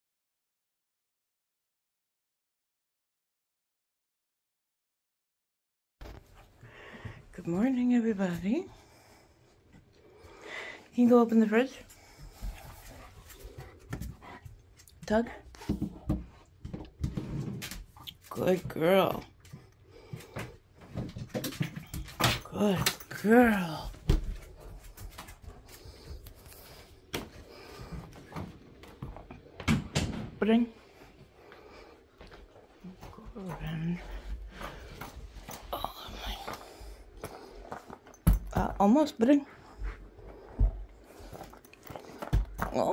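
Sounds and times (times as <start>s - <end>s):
dog panting: 11.8s - 16.7s, 24.2s - 29.6s, 39.3s - 42.7s
woman murmuring: 35.6s - 36.6s.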